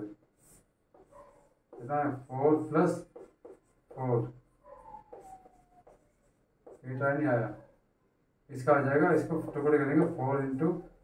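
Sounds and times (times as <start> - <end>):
chalk scratching on blackboard: 0.3 - 4.3, 4.9 - 7.0, 9.1 - 10.7
chalk squeak: 4.7 - 7.0.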